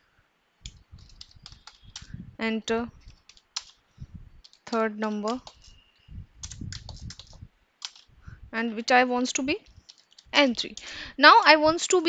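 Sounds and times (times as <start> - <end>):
computer keyboard typing: 0.6 - 2.2, 3.0 - 3.8, 4.4 - 8.1, 9.8 - 11.0.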